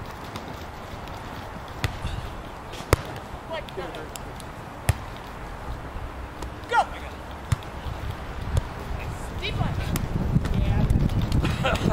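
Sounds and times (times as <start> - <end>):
volleyball being struck: 2.9 - 3.3, 4.8 - 5.1.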